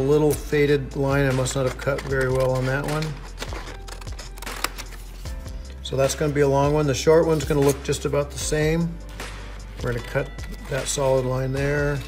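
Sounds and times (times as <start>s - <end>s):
scissors snipping paper: 1.2s - 5.2s.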